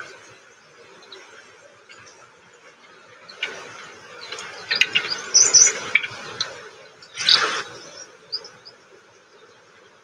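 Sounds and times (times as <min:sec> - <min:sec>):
high bird chirps: 0:03.3 - 0:08.8.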